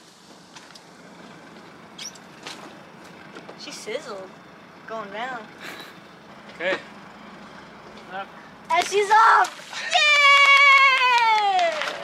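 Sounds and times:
short high squeaks: 0:01.9 - 0:02.7.

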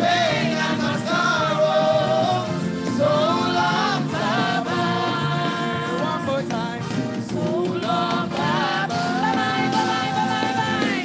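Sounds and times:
choir singing gospel song: 0:00.0 - 0:11.0.

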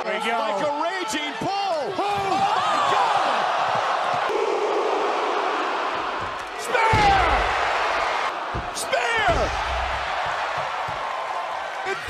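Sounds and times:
arena crowd noise: 0:00.0 - 0:12.0
crowd shouts: 0:00.0 - 0:12.0
heavy body impact thuds: 0:06.1 - 0:11.1.

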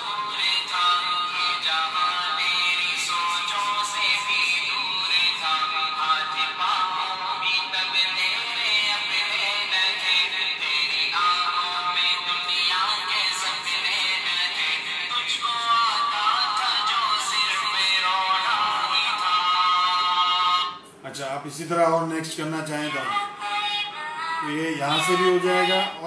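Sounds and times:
chanted singing from small speaker: 0:22.4 - 0:26.0.

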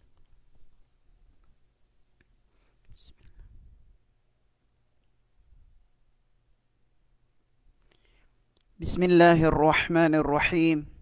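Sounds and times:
breathy whispered hiss: 0:02.4 - 0:03.9.

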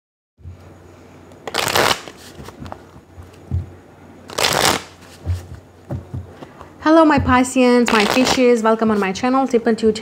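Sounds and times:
cards riffle-shuffled: 0:01.4 - 0:03.4, 0:04.3 - 0:05.6, 0:07.9 - 0:08.4
cards rustling: 0:01.4 - 0:03.4, 0:04.3 - 0:06.7, 0:07.9 - 0:09.1.

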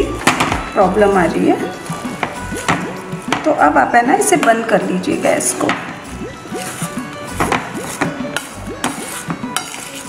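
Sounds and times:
metal spoon scraping a steel bowl: 0:06.6 - 0:10.0.

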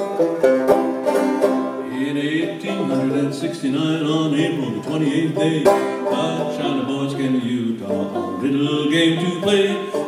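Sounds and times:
banjo strumming: 0:00.0 - 0:10.0.

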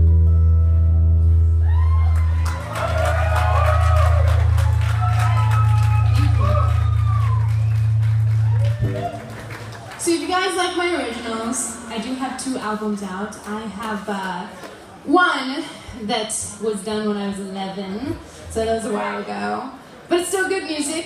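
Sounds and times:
audience cheering and clapping: 0:01.6 - 0:12.2.

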